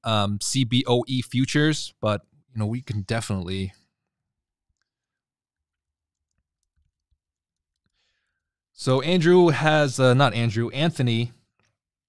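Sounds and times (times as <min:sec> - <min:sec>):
man speaking: 0:00.0 - 0:03.8, 0:08.8 - 0:11.3.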